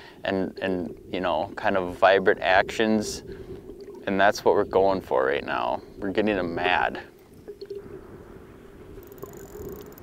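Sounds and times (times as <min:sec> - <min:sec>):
water lapping: 0:00.0 - 0:10.0
water dripping: 0:00.4 - 0:10.0.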